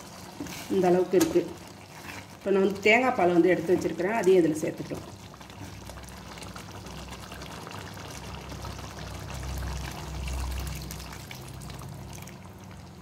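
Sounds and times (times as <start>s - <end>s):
curry bubbling in a pan: 0.0s - 13.0s.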